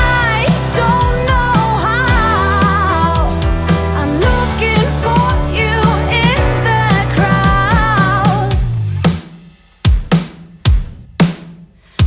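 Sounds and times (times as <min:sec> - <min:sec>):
kick and snare drum hits: 0:07.5 - 0:11.6.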